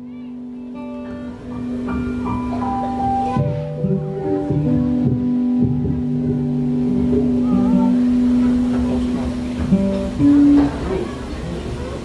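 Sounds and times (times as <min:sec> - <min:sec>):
live guitar music with held notes: 0:00.0 - 0:12.0.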